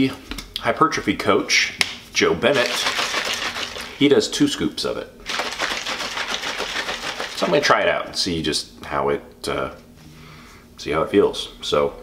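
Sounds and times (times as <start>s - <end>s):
plastic shaker bottle rattling: 2.5s - 4.0s, 5.3s - 7.7s.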